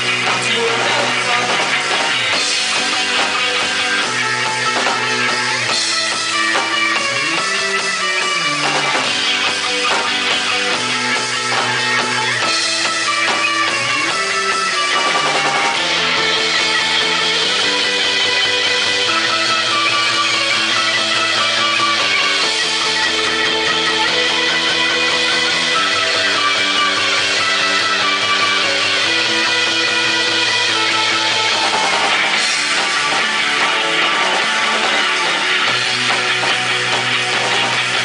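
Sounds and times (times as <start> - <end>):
drum kit: 0.0 - 38.0
electric bass: 0.0 - 38.0
electric guitar: 0.0 - 38.0.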